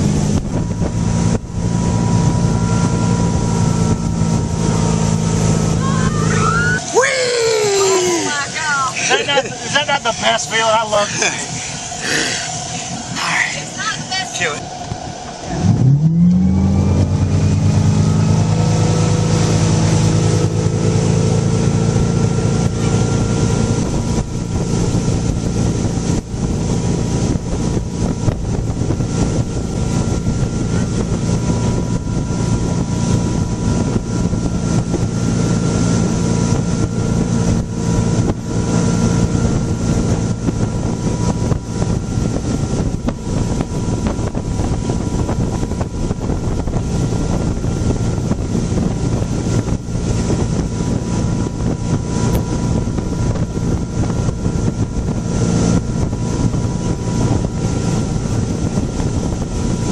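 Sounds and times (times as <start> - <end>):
boat engine revving: 0.0 - 59.9
rush of spray and wake: 0.0 - 59.9
wind on microphone: 0.0 - 59.9.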